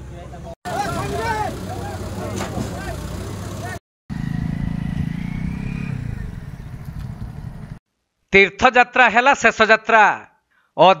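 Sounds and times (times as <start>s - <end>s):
men talking and shouting: 0.0s - 3.8s
diesel engine running: 0.3s - 7.8s.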